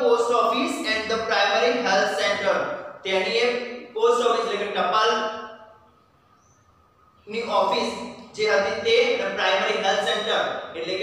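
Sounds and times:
man's voice: 0:00.0 - 0:05.3, 0:07.3 - 0:11.0.

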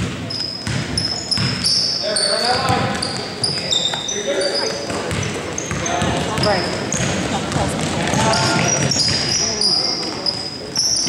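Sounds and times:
basketball dribbling on hardwood: 0:00.0 - 0:01.7, 0:02.6 - 0:03.6, 0:04.9 - 0:09.3
sneakers squeaking: 0:00.0 - 0:11.0.

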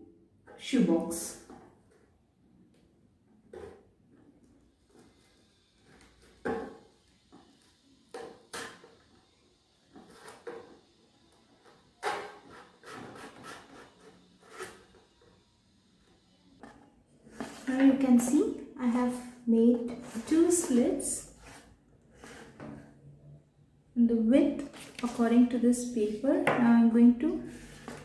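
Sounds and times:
craft knife cutting cardboard: 0:12.0 - 0:14.8.

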